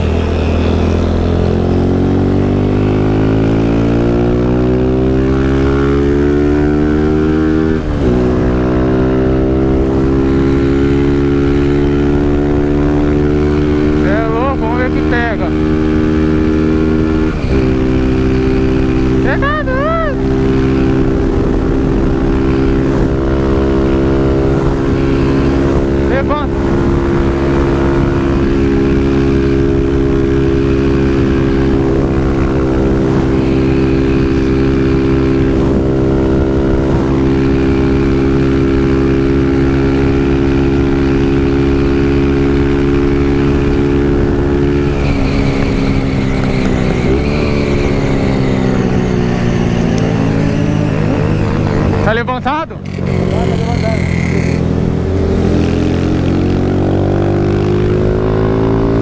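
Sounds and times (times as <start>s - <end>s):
wind rushing over microphone: 0.0s - 19.2s, 20.1s - 53.3s, 54.0s - 59.0s
motorcycle engine at high revs: 0.0s - 59.0s.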